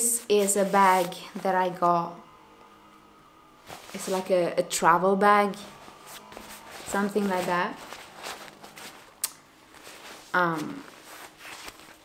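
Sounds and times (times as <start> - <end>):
cloth bag rustling: 0.2 - 1.6, 3.6 - 4.4, 5.6 - 12.0.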